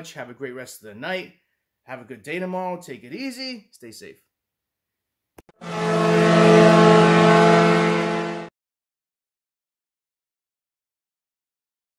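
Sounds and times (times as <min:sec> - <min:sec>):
low horn-like tone: 0:05.5 - 0:08.5.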